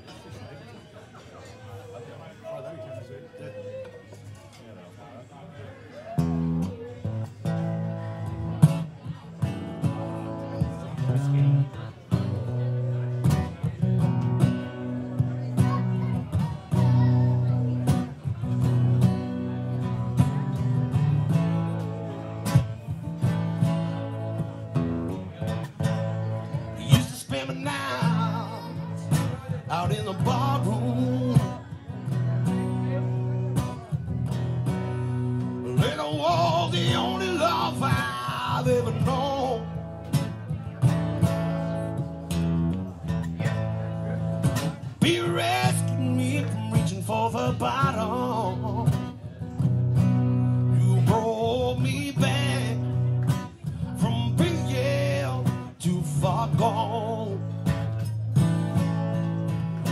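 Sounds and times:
acoustic guitars strumming: 6.2s - 59.9s
man singing: 25.4s - 33.7s, 35.4s - 40.3s, 44.5s - 49.4s, 50.0s - 58.1s.

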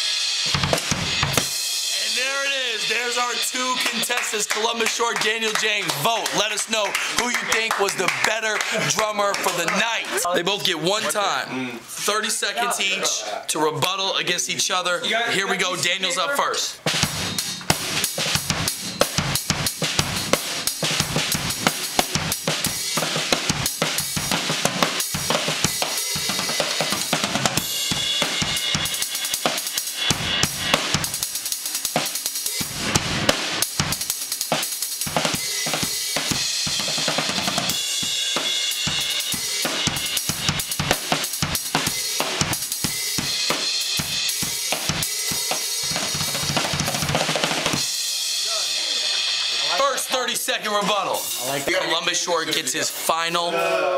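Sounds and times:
drum kit solo: 0.0s - 11.5s, 13.7s - 53.5s.

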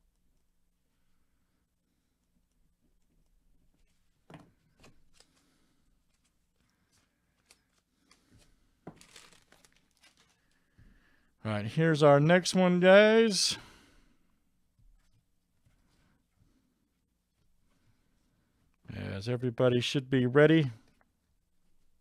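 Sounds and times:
foil wrappers crinkling: 5.1s - 10.6s.

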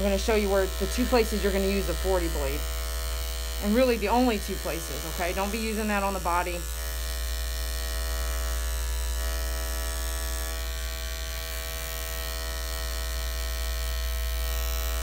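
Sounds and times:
electric clipper buzzing: 0.0s - 15.0s.

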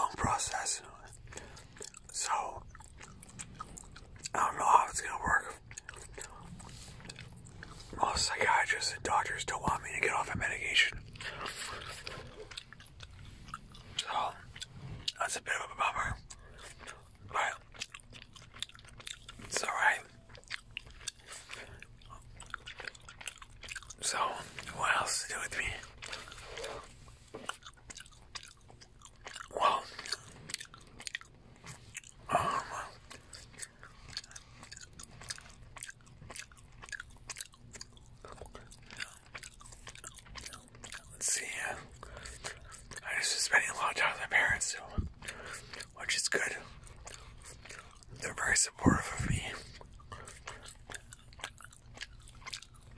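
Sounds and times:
gum chewing smacks: 0.0s - 52.9s.

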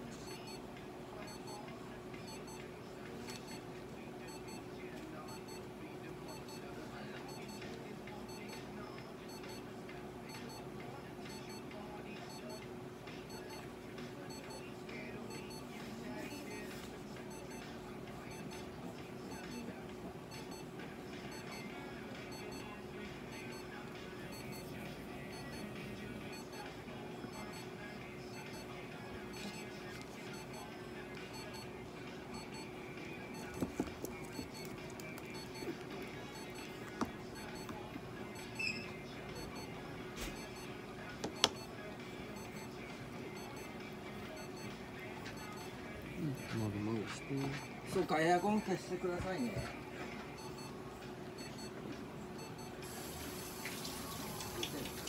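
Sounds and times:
high-pitched double beeps: 34.4s - 34.6s.

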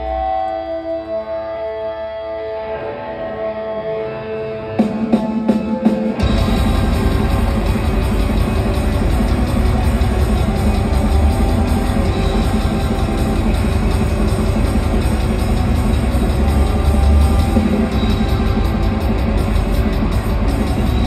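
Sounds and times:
electric guitar: 0.0s - 21.0s
drum kit: 4.8s - 21.0s
heavy low end bass: 6.2s - 21.0s.

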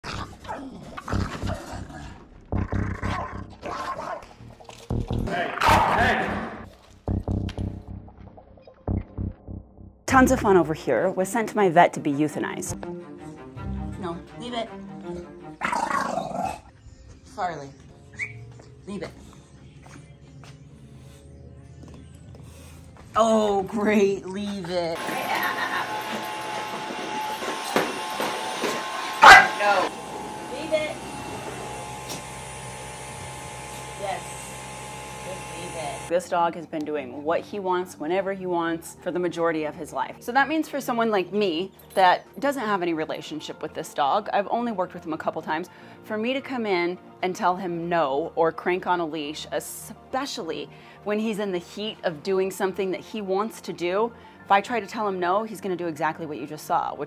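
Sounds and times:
dog growling and snarling: 0.0s - 6.6s, 15.6s - 16.7s
stick vacuum cleaner whining: 25.0s - 36.1s.

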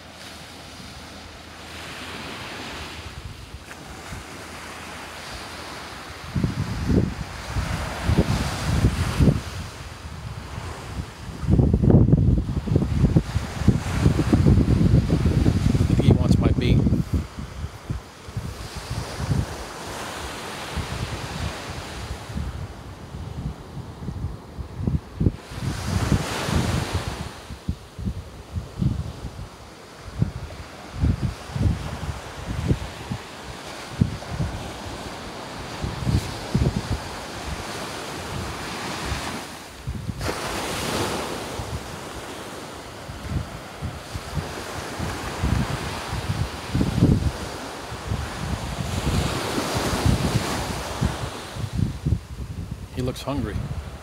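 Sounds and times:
ocean surf washing on beach: 0.0s - 54.0s
wind gusting on microphone: 0.0s - 54.0s.

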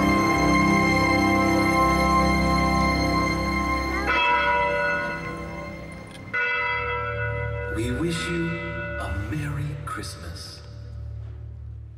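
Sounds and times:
bells ringing over loudspeakers: 0.0s - 10.0s.

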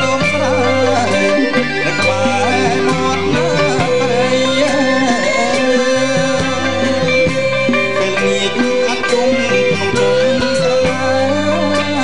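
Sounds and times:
live band accompaniment: 0.0s - 12.0s
man singing: 0.0s - 12.0s.

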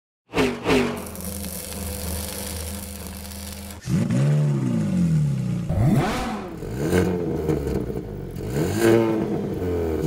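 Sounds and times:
car engine revving and idling: 3.7s - 10.0s.

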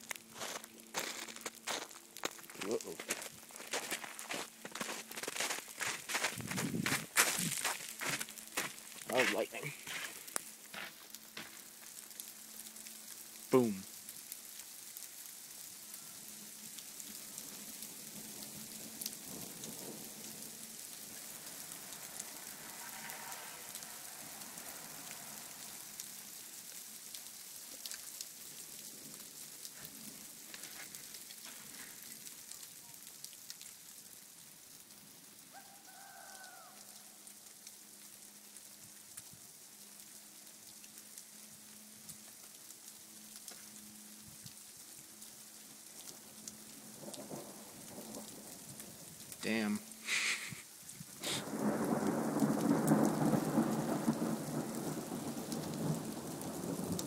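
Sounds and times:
freezing rain and hail falling: 0.0s - 57.0s.

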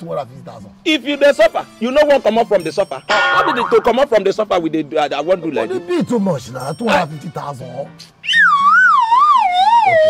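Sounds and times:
comic falling whistle: 8.2s - 10.0s.

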